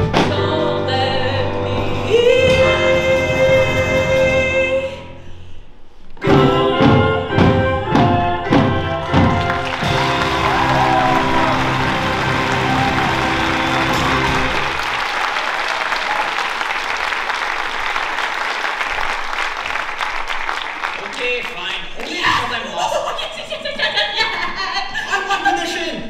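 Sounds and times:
live band playing chords: 0:06.2 - 0:15.2
audience applause: 0:09.0 - 0:22.1.

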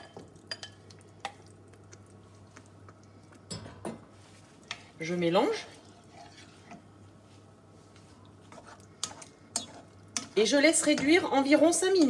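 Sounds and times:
spoon stirring wet sauce: 0:00.0 - 0:03.5, 0:04.1 - 0:12.0.

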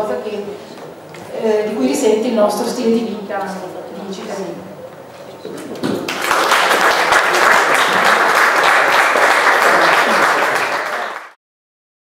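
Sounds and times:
speech: 0:00.0 - 0:00.6, 0:01.2 - 0:04.7
audience applauding: 0:05.9 - 0:11.4.

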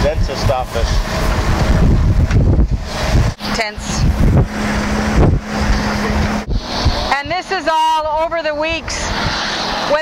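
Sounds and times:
vehicle road noise rumble: 0:00.0 - 0:10.0
wind buffeting microphone: 0:00.0 - 0:10.0.

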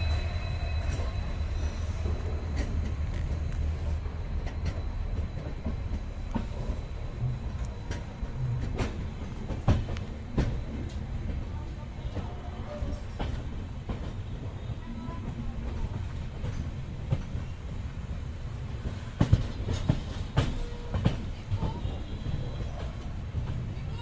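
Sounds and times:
train coach rumble: 0:00.0 - 0:24.0.

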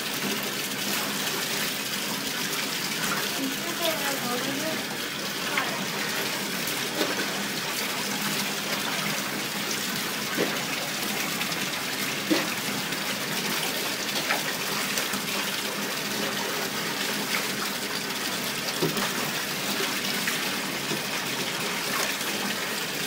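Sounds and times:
tap water running into bathtub: 0:00.0 - 0:23.0.

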